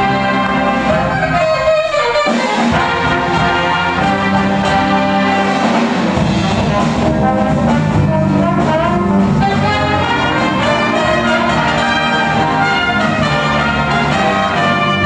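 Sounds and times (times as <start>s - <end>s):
jazz big band playing: 0.0s - 15.0s.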